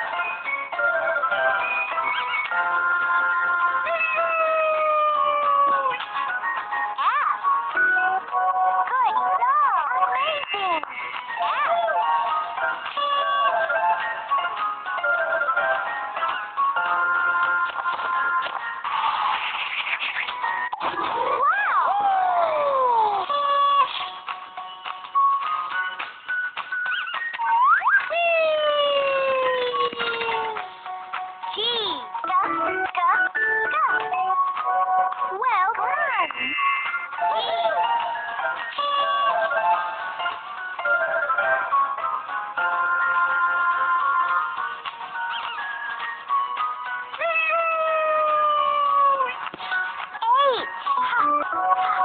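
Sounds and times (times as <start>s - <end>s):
cheerful children's game music: 0.0s - 52.0s.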